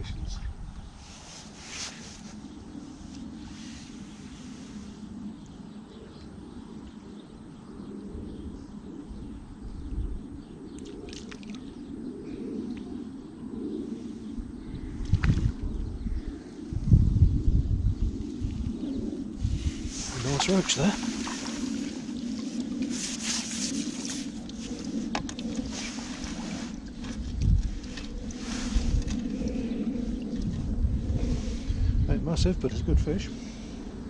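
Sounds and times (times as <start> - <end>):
steady low rumble: 0.0 - 34.0
wind buffeting microphone: 0.0 - 34.0.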